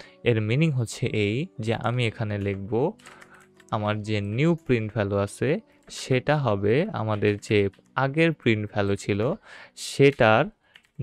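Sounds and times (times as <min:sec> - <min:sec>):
computer keyboard key clicks: 0:02.3 - 0:03.8, 0:10.1 - 0:11.0.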